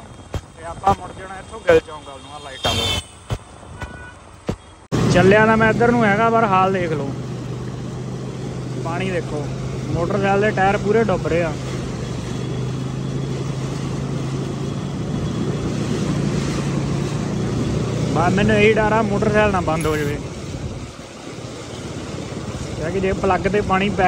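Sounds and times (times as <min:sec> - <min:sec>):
vehicle engine humming: 0:00.0 - 0:24.0
tyres splashing through water: 0:00.1 - 0:24.0.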